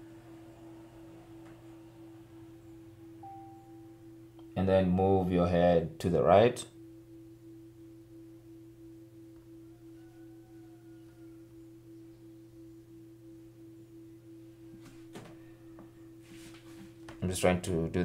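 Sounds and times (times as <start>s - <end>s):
faint pulsing electronic tone: 0.0s - 18.0s
low steady hum: 0.0s - 18.0s.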